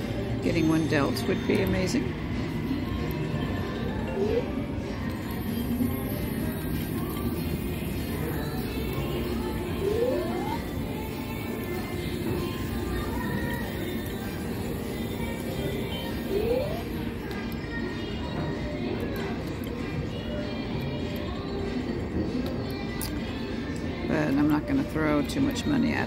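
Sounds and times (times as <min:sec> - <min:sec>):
slot machine music: 0:03.3 - 0:04.8, 0:09.1 - 0:12.8, 0:13.6 - 0:17.2
short rising electronic tones: 0:09.8 - 0:10.8, 0:16.3 - 0:16.9.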